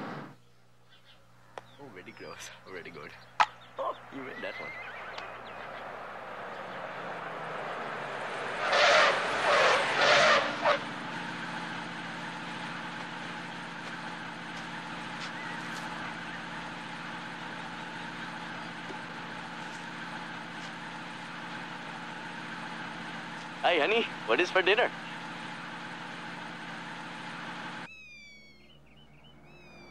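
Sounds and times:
truck engine running: 0:02.0 - 0:27.9.

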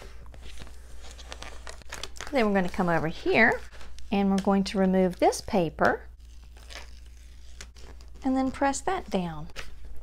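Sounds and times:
tape liner peeling: 0:06.1 - 0:08.7.

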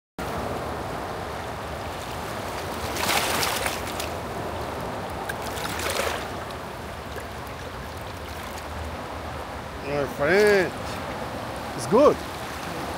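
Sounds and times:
turbulent river water rushing: 0:00.2 - 0:12.9
fish splashing in shallows: 0:02.6 - 0:04.2, 0:05.1 - 0:08.7.

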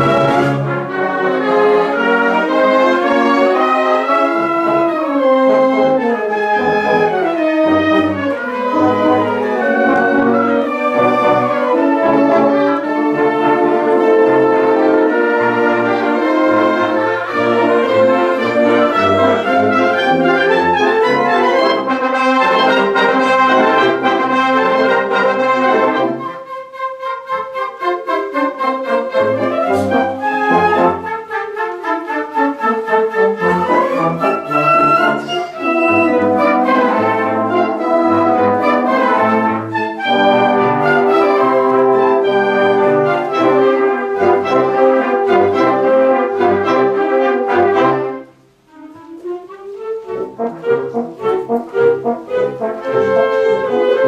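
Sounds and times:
brass: 0:00.0 - 0:54.0
wind band playing: 0:00.0 - 0:54.0.

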